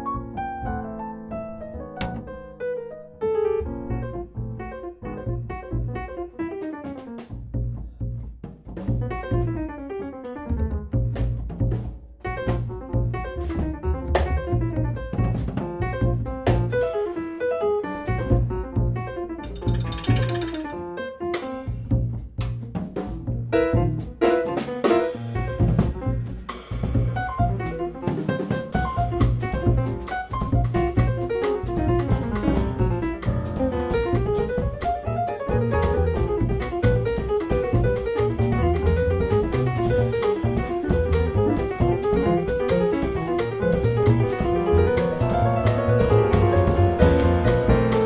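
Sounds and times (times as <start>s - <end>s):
upright double bass: 0.0s - 2.5s, 3.5s - 17.3s, 18.0s - 48.0s
grand piano running quick lines: 0.0s - 8.0s, 8.8s - 22.0s, 23.1s - 48.0s
drum kit: 5.5s - 48.0s.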